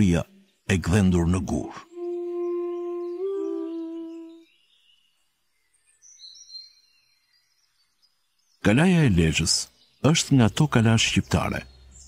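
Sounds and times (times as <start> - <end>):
faint high whistling tones: 1.6 - 4.5
low wind instrument note: 1.9 - 4.4.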